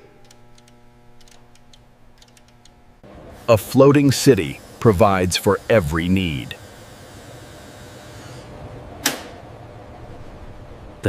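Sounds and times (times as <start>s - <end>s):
low ambient hum: 0.0s - 11.0s.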